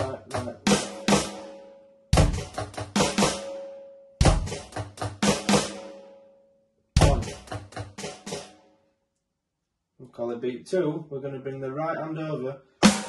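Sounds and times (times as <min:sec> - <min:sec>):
electronic drum kit beat: 0:00.0 - 0:01.5, 0:02.2 - 0:03.6, 0:04.2 - 0:05.9, 0:07.0 - 0:08.6
bass drum hit: 0:02.2 - 0:03.2, 0:04.2 - 0:05.3, 0:07.0 - 0:08.3.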